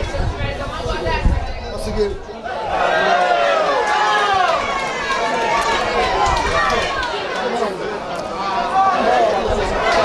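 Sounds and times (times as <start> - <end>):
players shouting and calling: 2.2 - 10.0.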